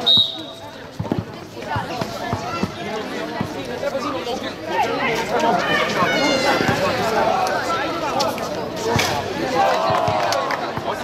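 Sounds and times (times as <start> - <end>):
players and spectators shouting: 4.1 - 8.1, 9.2 - 11.0.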